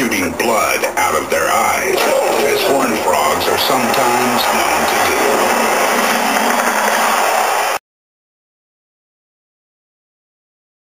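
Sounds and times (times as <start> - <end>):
loud steady rushing noise: 1.7 - 7.8.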